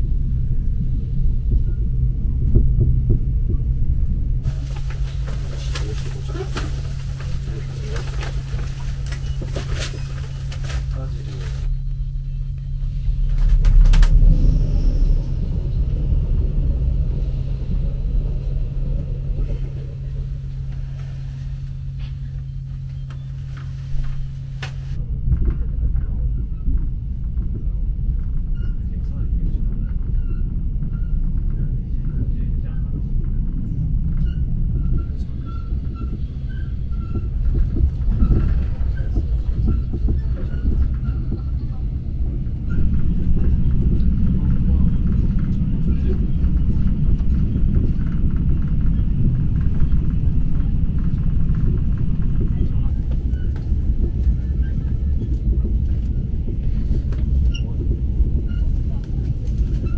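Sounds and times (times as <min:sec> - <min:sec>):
steady low hum: 0:00.0 - 0:59.9
train rumbling along track: 0:00.0 - 0:59.9.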